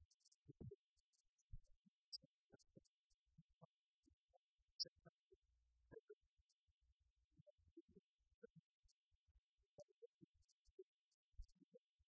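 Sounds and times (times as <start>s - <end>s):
faint low thumps and ticks: 0.0s - 12.0s.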